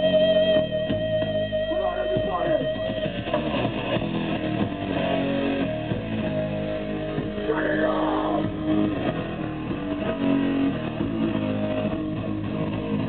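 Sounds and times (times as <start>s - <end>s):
electric guitar: 0.0s - 13.0s
punk band playing live: 0.0s - 13.0s
high steady held note: 6.8s - 9.7s.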